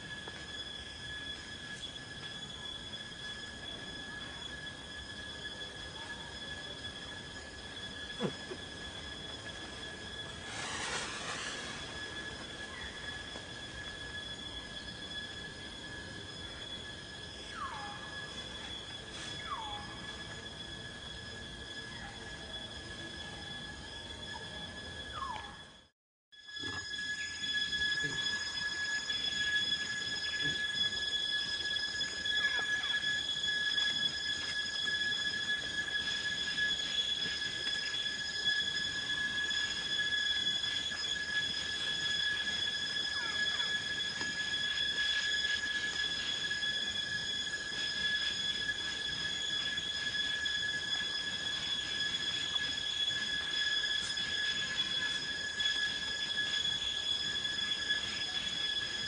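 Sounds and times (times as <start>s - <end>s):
cicadas droning: 0.0s - 59.0s.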